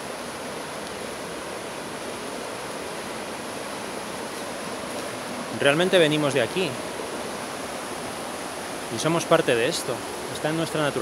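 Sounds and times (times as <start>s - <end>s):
woodland ambience rushing noise: 0.0s - 11.0s.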